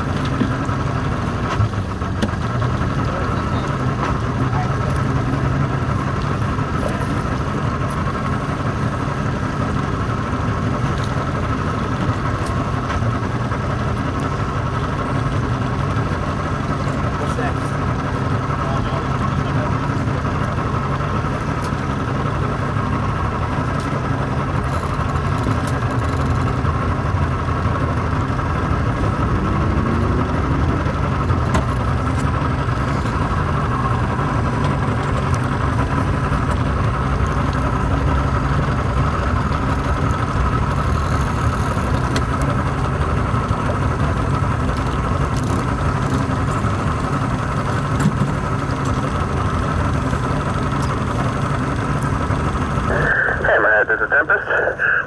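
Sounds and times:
boat engine idling: 0.0 - 55.0.

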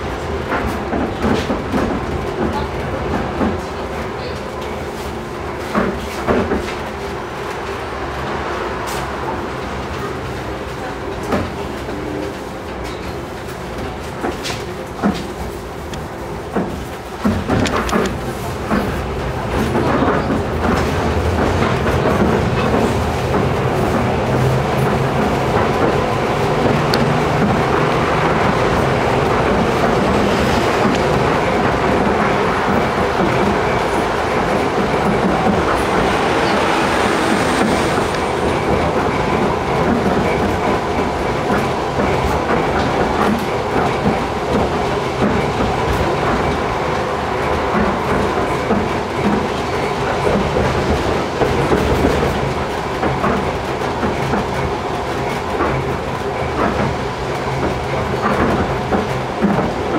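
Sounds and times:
tram wheels and motors rumbling: 0.0 - 59.9.

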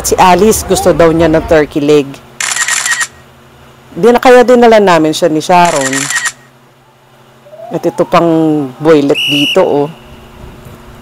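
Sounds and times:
camera shutter click: 2.4 - 3.2, 5.6 - 6.4.

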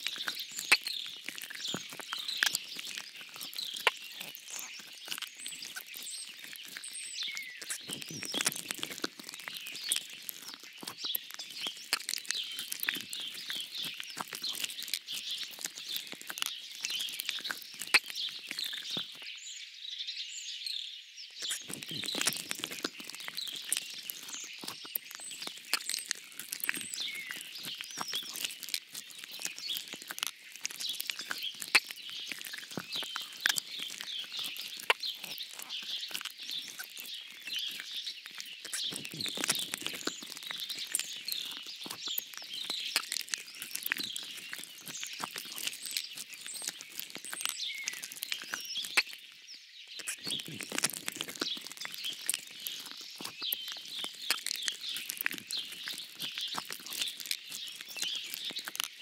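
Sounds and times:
small birds chirping: 0.0 - 59.0.

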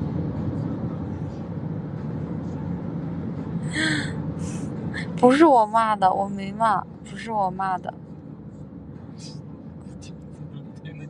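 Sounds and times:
car engine and road noise: 0.0 - 11.0
woman gasping: 3.7 - 5.2.

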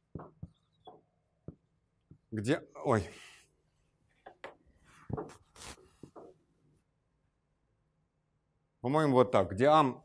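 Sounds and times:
marker writing on whiteboard: 0.0 - 2.3.

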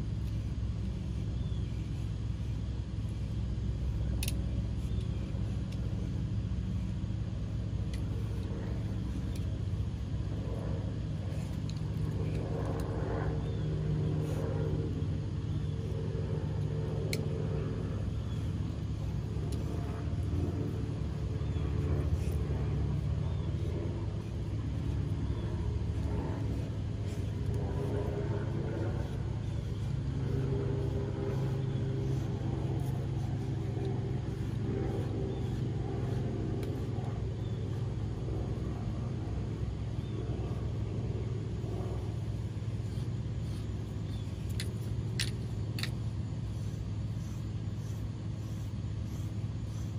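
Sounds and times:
motor humming and rumbling: 0.0 - 49.9.

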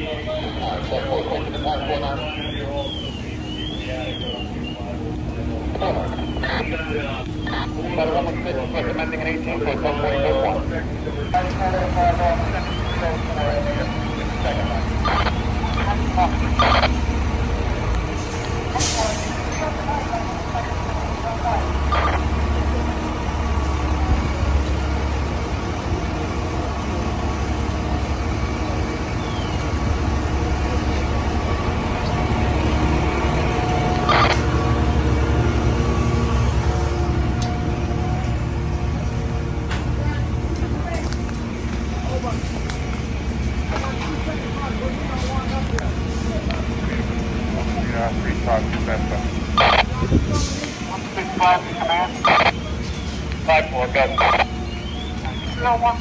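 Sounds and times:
diesel engines rumbling: 0.0 - 56.0.

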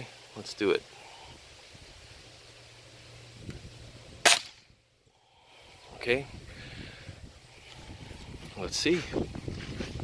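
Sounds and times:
pellet rifle shot crack: 4.2 - 4.7.

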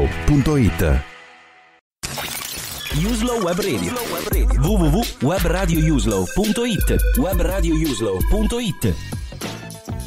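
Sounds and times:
crashing shattering sound effect: 2.0 - 4.3.

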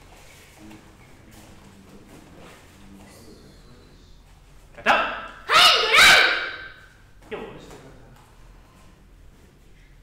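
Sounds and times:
person shouting: 5.4 - 6.8.

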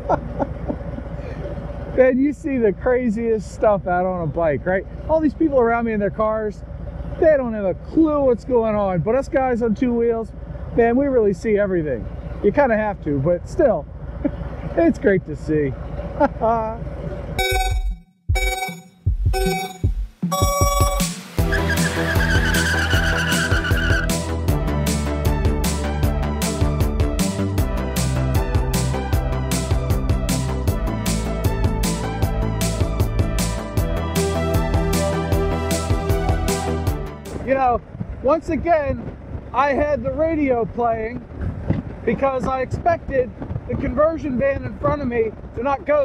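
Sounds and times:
man laughing: 0.0 - 1.6, 14.2 - 15.2, 16.0 - 16.9
motorcycle running: 0.0 - 18.6, 20.3 - 46.0
countdown beeps: 17.4 - 21.4
music: 17.4 - 37.5.

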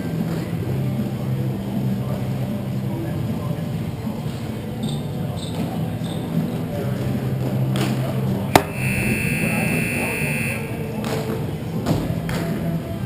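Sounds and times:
voices: 0.0 - 13.0
sharp crack: 8.5 - 8.8
scoreboard buzzer: 8.6 - 10.8.

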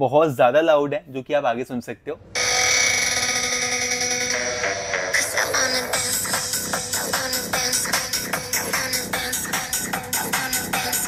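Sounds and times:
electronic dance music on laptop speakers: 2.4 - 11.0.

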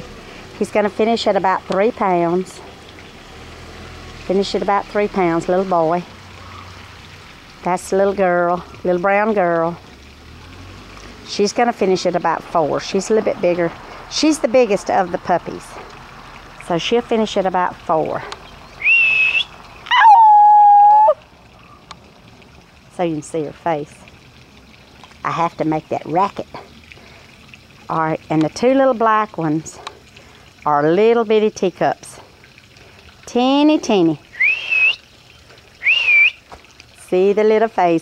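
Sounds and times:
person whistling: 18.8 - 19.5, 34.4 - 35.0, 35.8 - 36.4.

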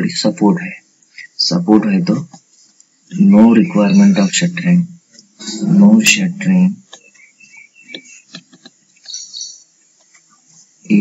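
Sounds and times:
high-pitched chirping: 3.1 - 4.5, 7.0 - 9.7.

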